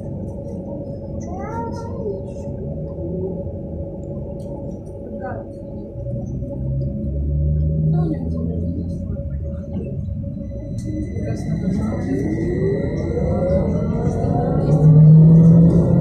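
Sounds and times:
deep hum: 0.0 - 16.0
low rumble of the ride: 0.0 - 16.0
trolleybus motor whine: 0.0 - 16.0.

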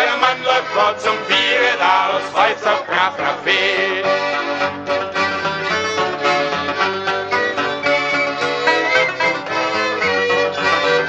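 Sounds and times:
string instruments playing folk tune: 0.0 - 11.0.

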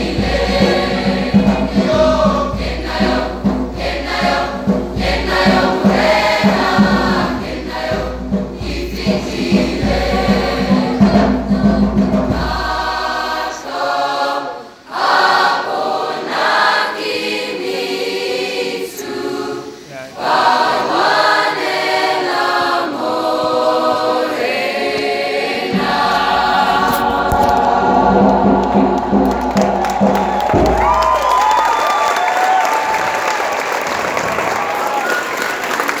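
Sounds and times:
choir singing in parts: 0.0 - 31.1
audience applauding: 27.3 - 36.0.

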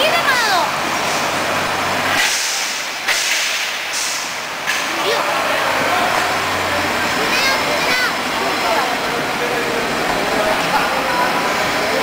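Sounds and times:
diesel engine humming: 0.0 - 12.0
air brakes hissing: 2.1 - 4.6.

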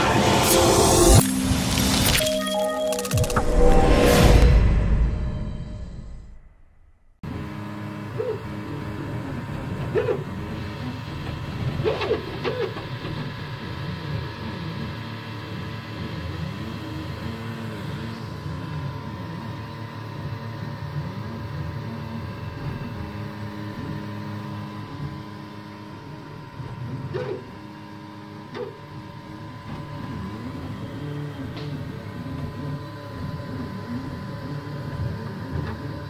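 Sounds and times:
stepper motors whining: 0.0 - 4.4.

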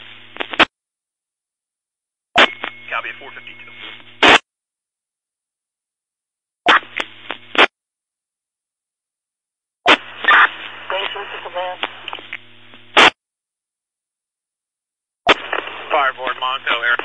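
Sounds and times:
steady radio hum: 0.0 - 0.7, 2.4 - 4.4, 6.7 - 7.7, 9.9 - 13.1, 15.3 - 17.0
radio squelch burst: 2.4 - 4.4, 9.9 - 12.4, 13.0 - 13.2, 15.3 - 17.0
garbled radio voice: 2.9 - 4.0, 10.3 - 12.3, 15.4 - 17.0.

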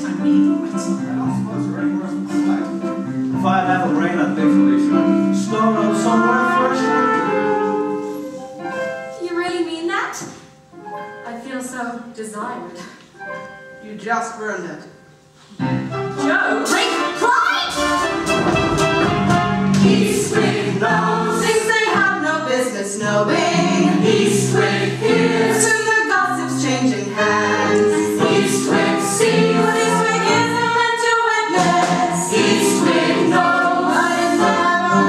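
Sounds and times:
choir of voices singing: 4.8 - 7.8, 18.0 - 35.0.

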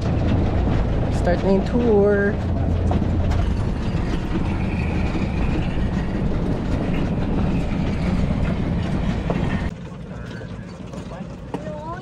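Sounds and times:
vehicle rumbling in motion: 0.0 - 12.0.

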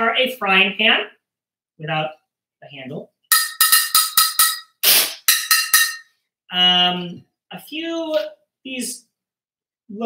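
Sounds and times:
drumstick striking frying pan: 3.3 - 6.0.

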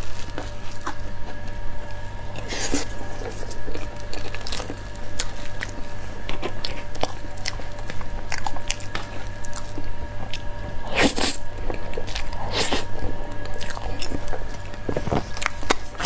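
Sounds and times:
wet chewing with small clicks: 0.0 - 10.6, 11.6 - 16.0.

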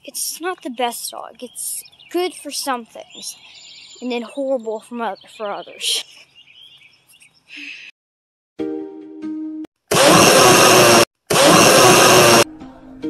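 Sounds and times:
harsh buzzing blasts: 9.9 - 12.4.

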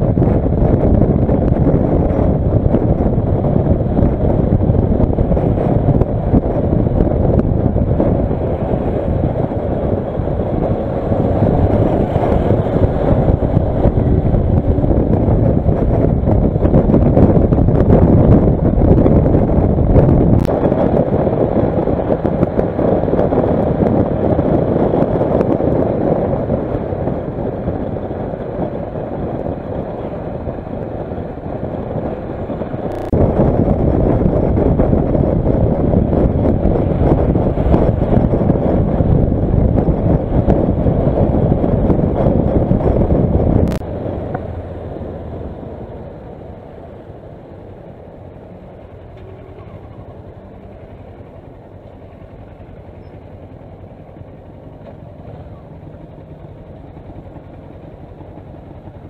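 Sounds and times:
motorcycle engine: 0.0 - 59.0
road noise: 0.0 - 59.0
rumble of traffic: 0.0 - 59.0
wind rushing over microphone: 0.0 - 59.0
motorcycle engine idling: 45.3 - 59.0.

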